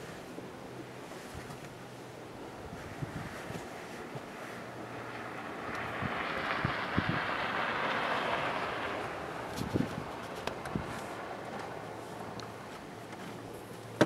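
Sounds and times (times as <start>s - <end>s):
vehicle passing by: 2.9s - 12.7s.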